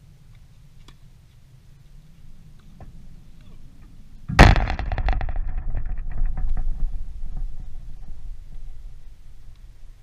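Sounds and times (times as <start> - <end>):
chain-link fence rattling: 4.4 - 9.5.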